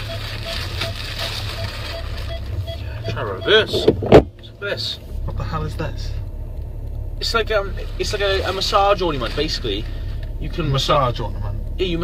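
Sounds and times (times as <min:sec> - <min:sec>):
plastic bag rustling: 0:00.0 - 0:02.8
car engine hum: 0:00.0 - 0:12.0.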